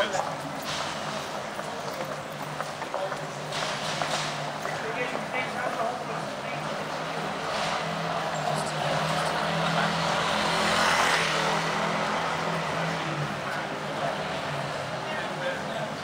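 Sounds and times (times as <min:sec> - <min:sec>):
people talking: 0:00.0 - 0:16.0
vehicle passing: 0:03.7 - 0:16.0.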